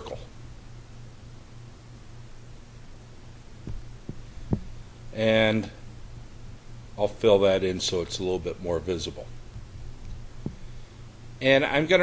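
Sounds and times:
low electrical hum: 0:00.0 - 0:12.0
soft low thumps: 0:03.6 - 0:04.9, 0:09.5 - 0:10.8.

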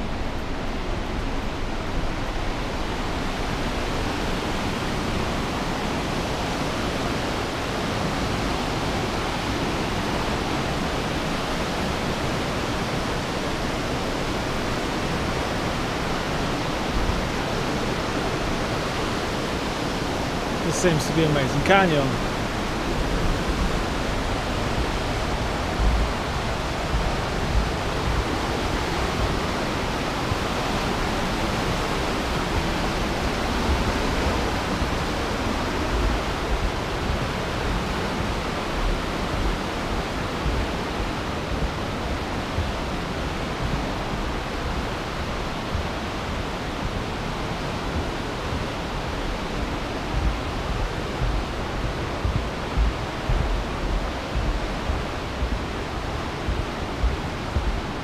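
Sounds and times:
river rushing: 0:00.0 - 0:58.0
low thumps: 0:48.0 - 0:58.0.

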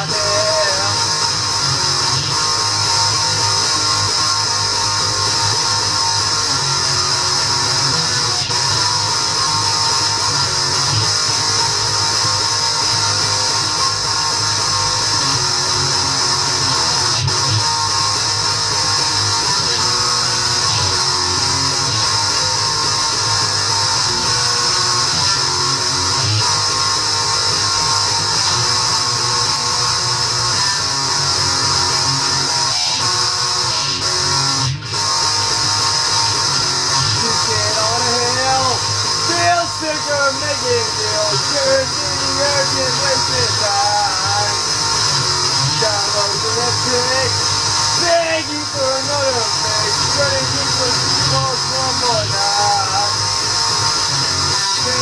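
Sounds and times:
distorted guitar strumming: 0:00.0 - 0:55.0.

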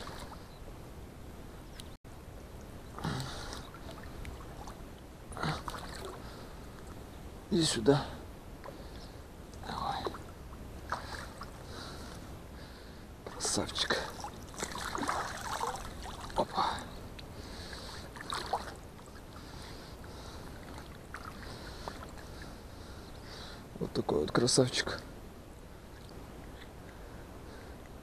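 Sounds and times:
water sloshing: 0:00.0 - 0:00.6, 0:02.9 - 0:07.0, 0:09.7 - 0:12.2, 0:13.3 - 0:17.0, 0:17.6 - 0:22.6.

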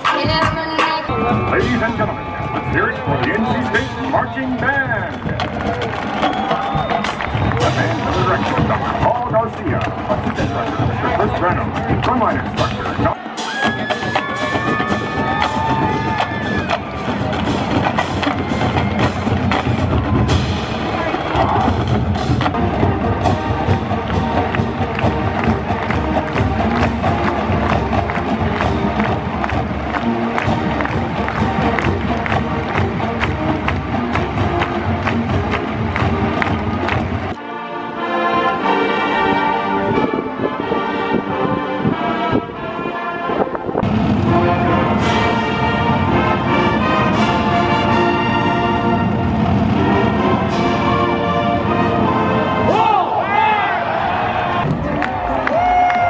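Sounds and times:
drumline percussion: 0:00.0 - 0:37.4, 0:43.8 - 0:56.0
marching band brass: 0:00.0 - 0:56.0.

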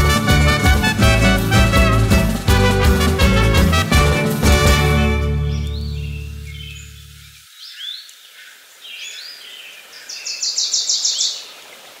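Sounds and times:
song final chord: 0:00.0 - 0:07.2
birds chirping: 0:04.1 - 0:11.6
bird trill: 0:05.4 - 0:09.3.

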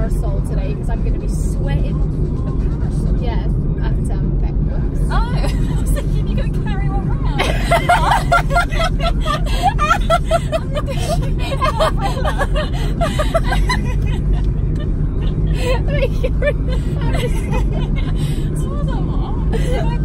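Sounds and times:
road and engine hum in car: 0:00.0 - 0:20.0
women laughing: 0:07.3 - 0:20.0.

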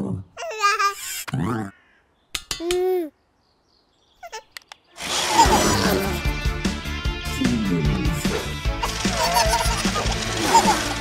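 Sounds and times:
wordless cartoon voice sounds: 0:00.2 - 0:02.0
faint clicks: 0:04.5 - 0:04.9
background music: 0:05.0 - 0:11.0.

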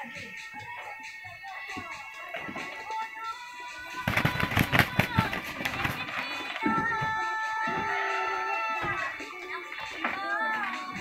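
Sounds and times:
chicken wings flapping: 0:03.8 - 0:06.8.

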